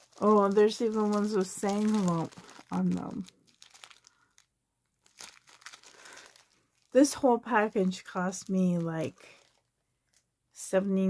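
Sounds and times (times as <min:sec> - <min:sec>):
plastic bag crinkling: 0:00.0 - 0:10.3.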